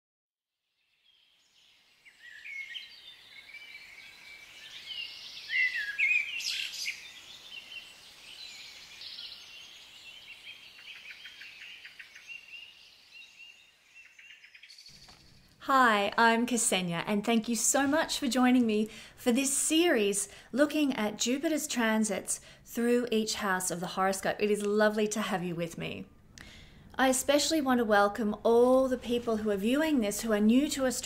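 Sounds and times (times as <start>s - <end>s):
birdsong: 0.8s - 15.6s
soft background hiss: 14.9s - 31.0s.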